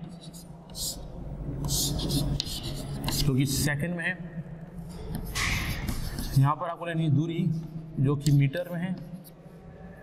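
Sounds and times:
chalk on chalkboard: 1.6 - 3.4, 5.1 - 6.6.

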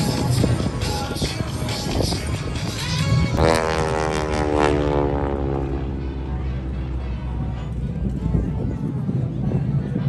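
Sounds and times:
propeller plane droning overhead: 0.0 - 10.0.

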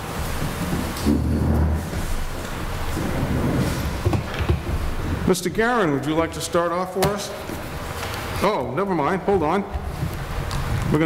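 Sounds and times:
chairs moving on wooden floor: 0.0 - 11.0
heavy low rumble: 0.3 - 6.5.

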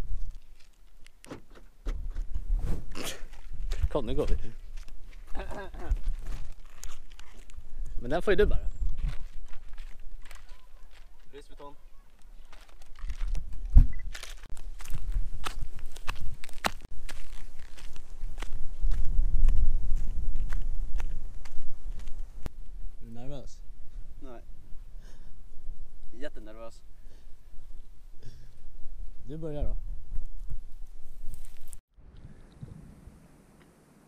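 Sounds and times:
wind rumbling on microphone: 1.8 - 10.2, 12.8 - 26.2, 27.4 - 33.6
flip-flop footsteps on rock: 12.1 - 22.2.

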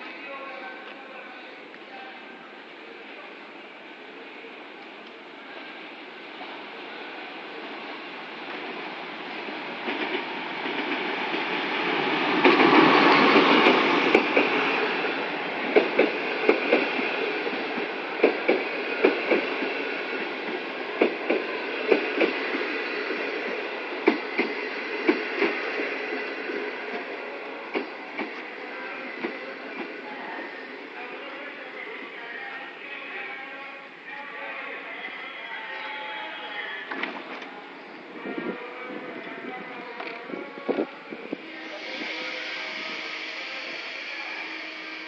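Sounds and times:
diesel locomotive passing: 0.0 - 45.0
train coaches rolling past: 0.0 - 45.0
train wheel clicks: 12.4 - 14.6, 15.7 - 17.0, 18.2 - 19.7, 24.0 - 25.6.

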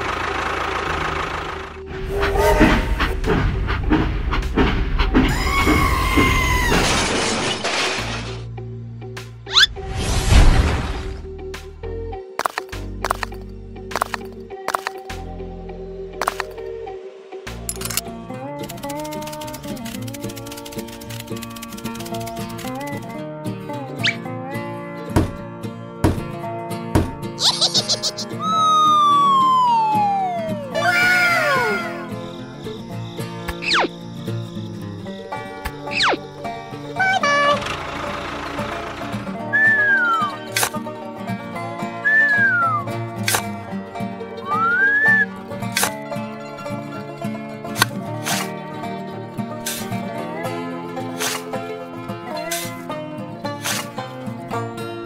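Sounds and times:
loud crashing and shattering: 5.6 - 8.5
background music: 8.2 - 55.0
whistle-like tone: 27.4 - 34.8, 39.5 - 40.5, 42.0 - 42.9, 44.4 - 45.3.

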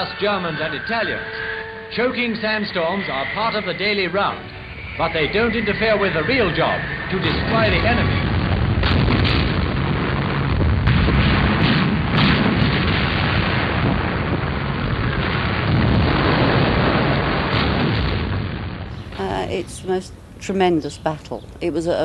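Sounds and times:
heavy rumble of explosions: 0.0 - 22.0.

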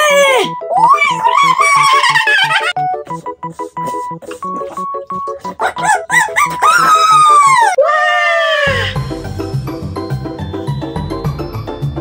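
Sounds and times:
plinky keyboard music: 0.2 - 7.8, 9.0 - 12.0.

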